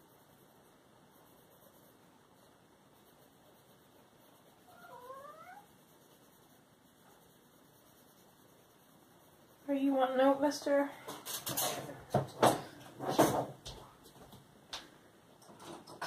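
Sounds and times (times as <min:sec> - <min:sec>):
cat meowing: 0:04.7 - 0:05.7.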